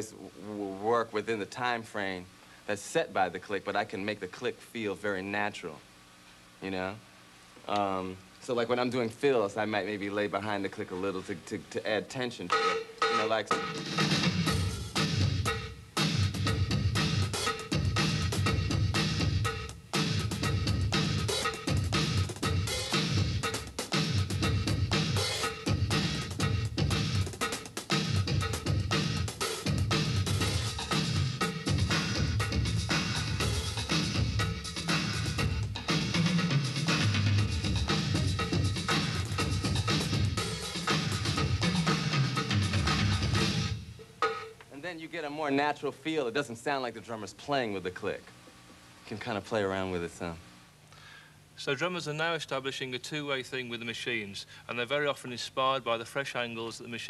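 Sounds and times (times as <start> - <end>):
drum kit funk groove: 12.3 - 44.8.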